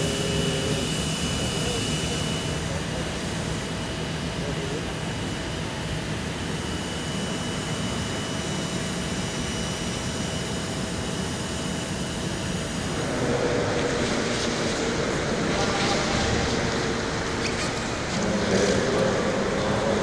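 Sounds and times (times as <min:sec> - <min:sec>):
jet aircraft rush with whine: 0:00.0 - 0:20.0.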